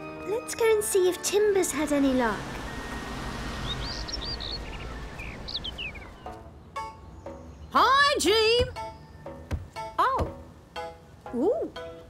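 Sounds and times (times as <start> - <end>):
birds chirping: 0.0 - 10.8
steady outdoor hiss: 0.0 - 12.0.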